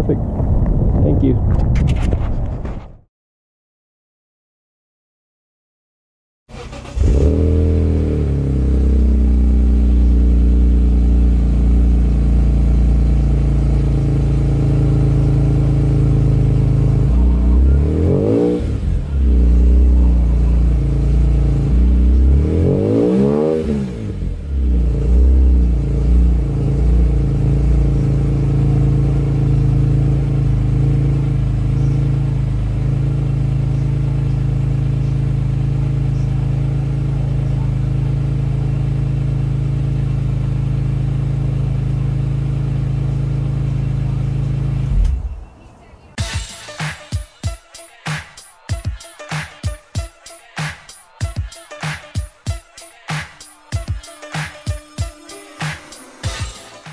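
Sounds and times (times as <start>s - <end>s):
engine revving: 6.5s - 45.3s
car engine starting and idling: 6.5s - 46.2s.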